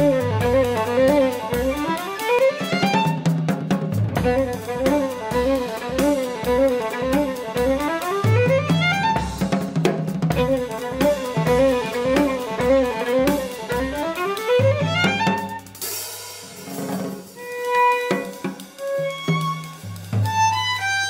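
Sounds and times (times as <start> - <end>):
fast violin runs: 0.0 - 3.3, 4.0 - 15.7, 17.4 - 21.0
drum kit groove: 0.0 - 21.0.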